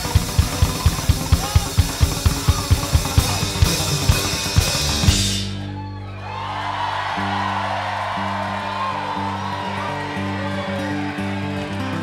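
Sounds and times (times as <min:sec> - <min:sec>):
audience whooping and cheering: 0:04.5 - 0:12.0.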